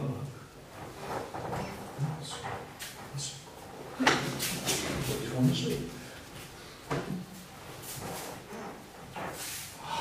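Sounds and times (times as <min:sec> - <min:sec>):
short hissing rushes of movement: 0:09.4 - 0:09.8.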